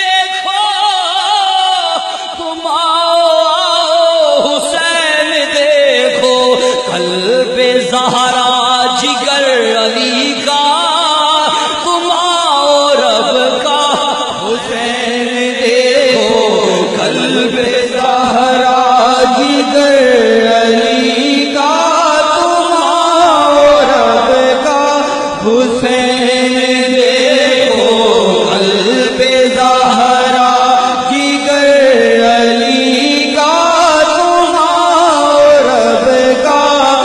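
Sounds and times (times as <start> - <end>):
man chanting: 0.0 - 37.0.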